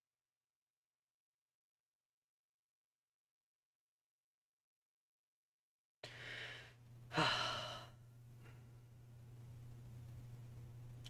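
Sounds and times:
person breathing in: 6.0 - 8.7
low electrical hum: 6.0 - 11.0
person sighing: 6.1 - 8.0.

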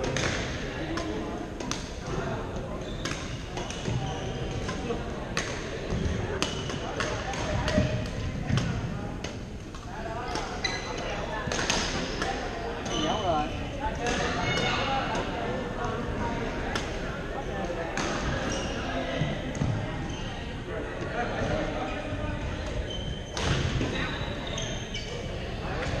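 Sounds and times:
shoes squeaking on gym floor: 2.8 - 4.7, 10.4 - 11.2, 12.8 - 13.6, 22.8 - 25.3
rackets smacking shuttlecocks: 3.0 - 10.6, 11.5 - 12.4.

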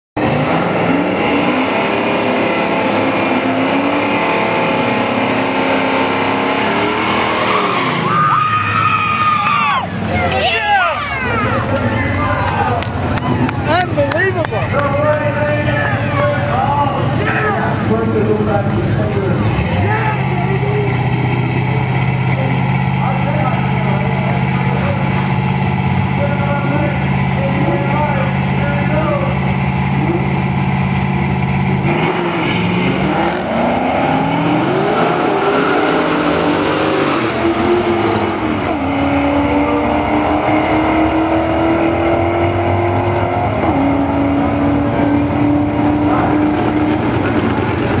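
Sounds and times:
drag racing car engines: 0.2 - 48.0
voices: 8.1 - 29.4.

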